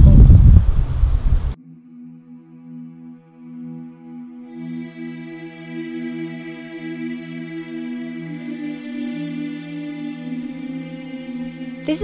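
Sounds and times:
wind buffeting microphone: 0:00.0 - 0:01.6
soft ambient music: 0:01.5 - 0:12.0.

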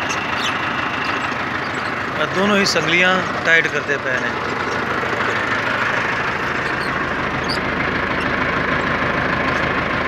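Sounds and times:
tractor diesel engine idling: 0:00.0 - 0:10.0.

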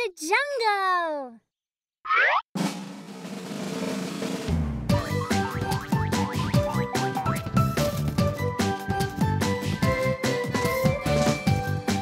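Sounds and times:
cartoon descending slide effect: 0:02.1 - 0:02.4.

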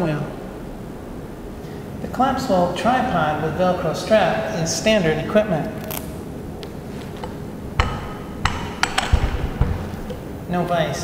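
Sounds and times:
tripod legs clacking: 0:05.8 - 0:10.4.

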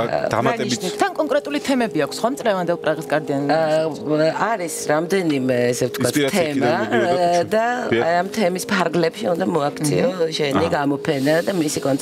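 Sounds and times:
person talking: 0:00.0 - 0:01.0, 0:06.0 - 0:08.2, 0:09.8 - 0:10.8.

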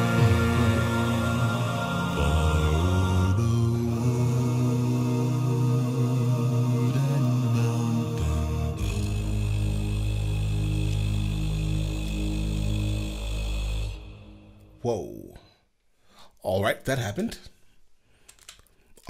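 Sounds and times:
male voices singing in harmony: 0:00.0 - 0:14.8.

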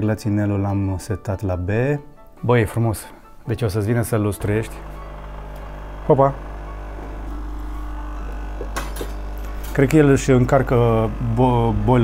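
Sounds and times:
coffee machine humming: 0:03.9 - 0:12.0.

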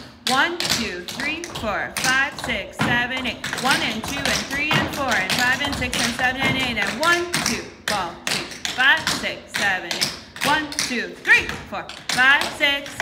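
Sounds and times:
tap shoes clicking on wooden floor: 0:00.0 - 0:13.0
person counting the beat: 0:00.2 - 0:13.0.

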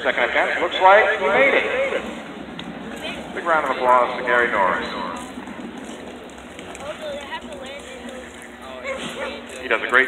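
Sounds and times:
steady background noise: 0:00.0 - 0:10.0
distant announcer speaking: 0:02.9 - 0:05.4.

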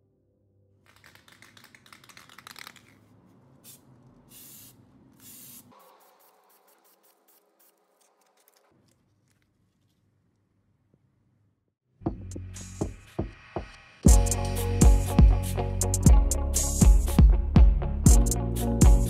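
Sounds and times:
spray can rattling clicks: 0:00.9 - 0:08.6
spray paint hissing: 0:03.6 - 0:08.2.

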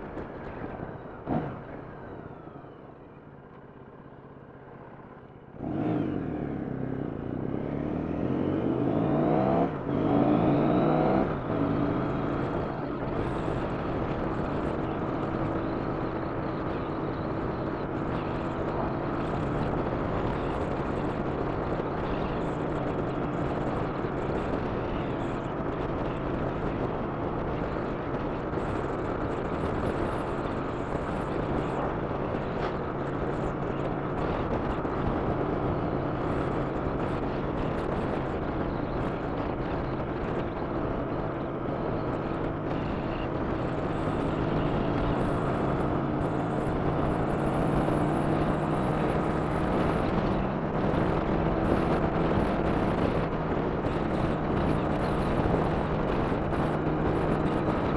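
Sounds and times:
motorcycle engine accelerating: 0:00.1 - 0:57.9
wind noise on microphone: 0:33.8 - 0:57.9.

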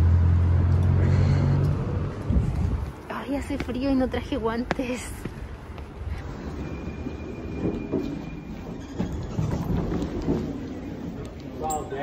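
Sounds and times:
footsteps on stone and tile: 0:01.6 - 0:06.6, 0:07.5 - 0:11.6.

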